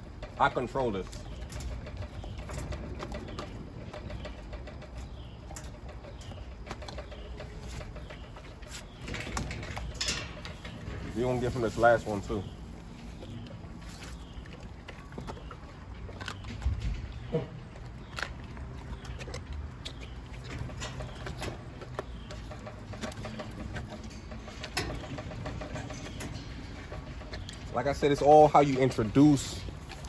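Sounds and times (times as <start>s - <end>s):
dog paws on wire-mesh gate: 0.0s - 30.0s.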